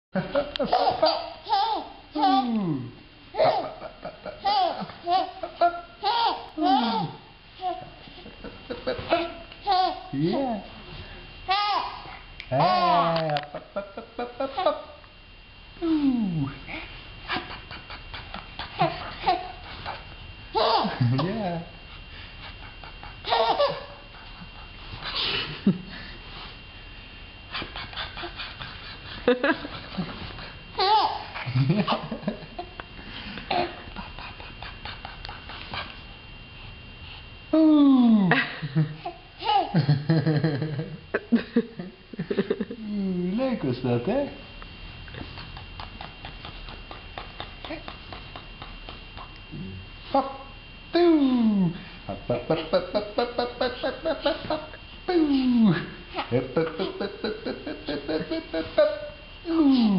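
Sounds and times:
baby laughing: 0:00.6 - 0:02.6, 0:03.4 - 0:07.8, 0:08.7 - 0:10.1, 0:20.6 - 0:21.0, 0:23.0 - 0:24.0, 0:30.8 - 0:32.0, 0:39.0 - 0:39.8, 0:45.3 - 0:49.3, 0:56.2 - 0:59.2
man popping lips: 0:45.1 - 0:49.4.

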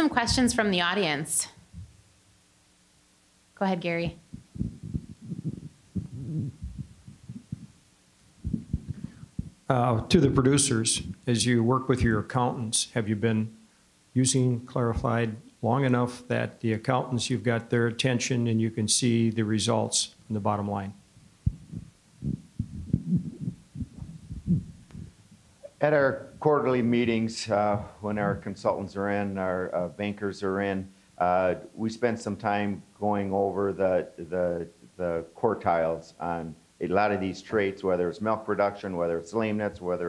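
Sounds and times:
microphone handling thumps: 0:01.6 - 0:02.0, 0:04.0 - 0:07.8, 0:08.4 - 0:11.3, 0:21.2 - 0:25.7, 0:27.6 - 0:28.6.

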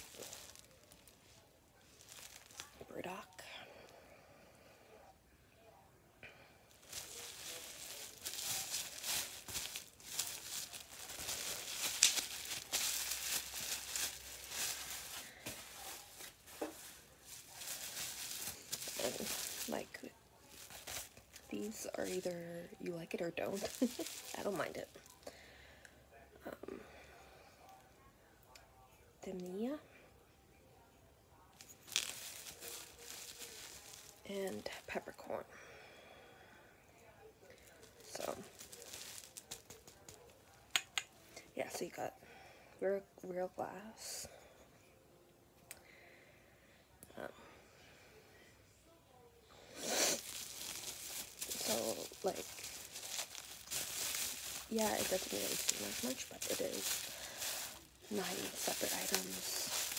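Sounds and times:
packaging crinkling and rustling: 0:00.0 - 0:02.9, 0:06.7 - 0:22.3, 0:23.1 - 0:25.2, 0:31.6 - 0:34.9, 0:37.7 - 0:40.7, 0:50.0 - 0:59.9.

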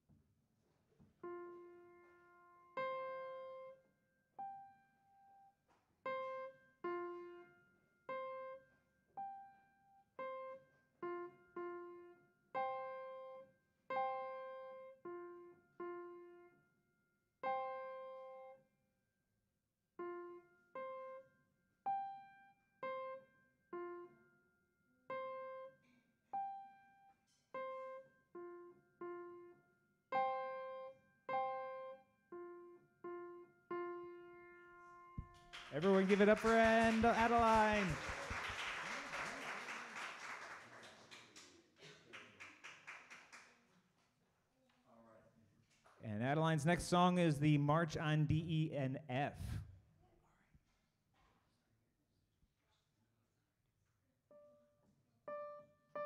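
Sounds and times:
simple piano melody: 0:01.2 - 0:03.8, 0:04.4 - 0:16.8, 0:17.4 - 0:18.6, 0:20.0 - 0:35.8, 0:55.3 - 0:56.0.

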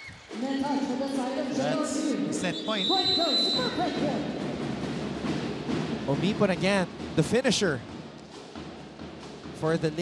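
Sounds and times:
referee's whistle long blast: 0:02.5 - 0:03.8.

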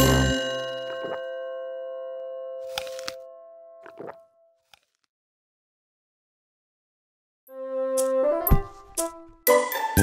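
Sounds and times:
bell-like chime ringing: 0:00.0 - 0:03.6.

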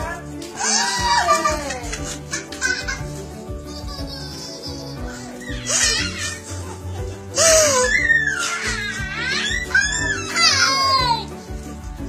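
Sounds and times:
background music: 0:00.0 - 0:12.0
toddler giggling: 0:03.7 - 0:11.2.

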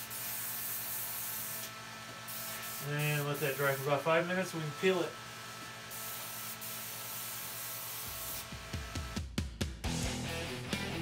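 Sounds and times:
airbrush spraying hiss: 0:00.0 - 0:04.6, 0:05.9 - 0:08.5
music with drum hits: 0:08.4 - 0:11.0.

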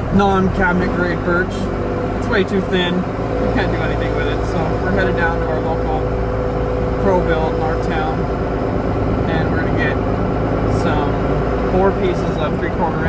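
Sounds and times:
indistinct voices: 0:00.0 - 0:13.0
road and engine rumble: 0:00.0 - 0:13.0.

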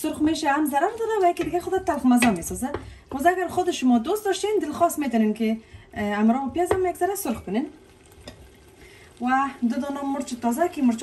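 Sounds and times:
woman speaking: 0:00.0 - 0:07.8, 0:09.2 - 0:11.0
sauce sizzling in a pot: 0:00.1 - 0:11.0.

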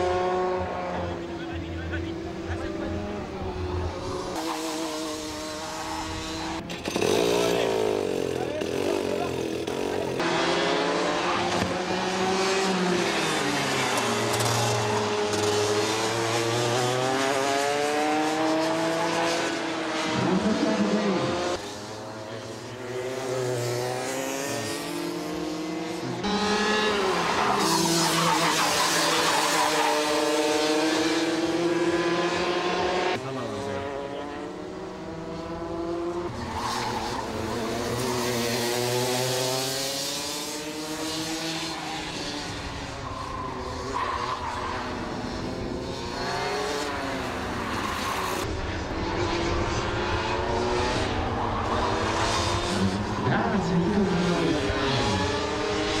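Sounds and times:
kart engines revving: 0:00.0 - 0:56.0.

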